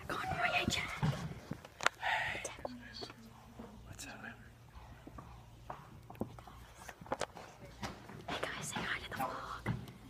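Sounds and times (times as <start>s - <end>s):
person whispering: 2.0s - 4.5s, 8.4s - 9.7s.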